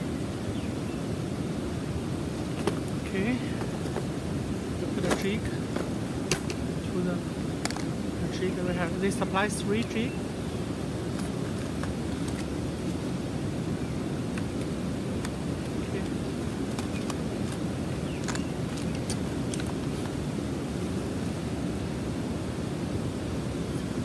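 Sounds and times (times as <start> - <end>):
river water rushing: 0.0 - 24.0.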